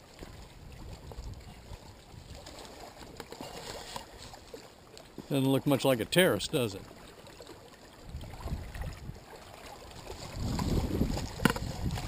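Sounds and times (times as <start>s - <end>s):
small waves lapping on rocks: 0.0s - 12.0s.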